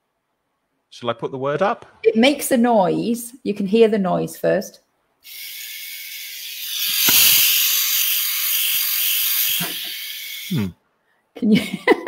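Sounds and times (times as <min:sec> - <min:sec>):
lint remover motor whirring: 0:05.3 - 0:10.6.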